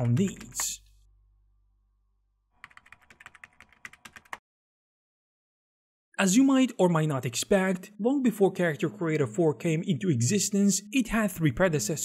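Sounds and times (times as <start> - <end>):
computer keyboard typing: 2.6 - 4.4.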